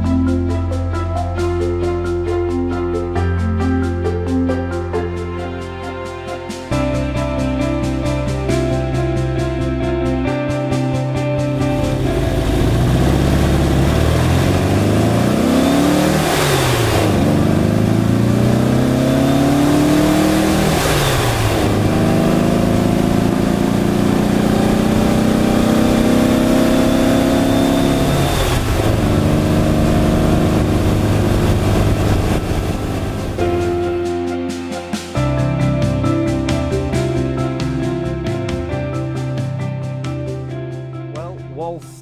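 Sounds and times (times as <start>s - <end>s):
car engine accelerating: 6.7s - 34.1s.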